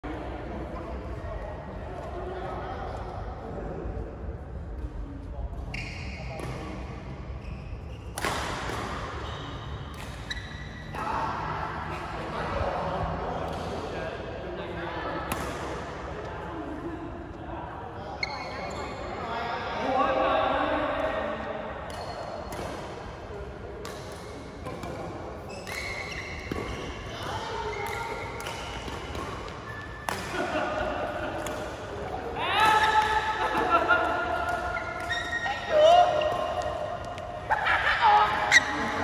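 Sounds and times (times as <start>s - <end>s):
people talking in echoing hall: 0.0s - 39.0s
racket striking shuttlecock: 27.8s - 30.6s, 31.3s - 33.6s.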